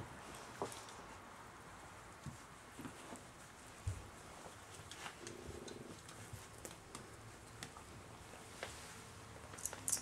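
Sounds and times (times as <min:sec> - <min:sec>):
light clicks from dogs moving: 0:02.3 - 0:08.0.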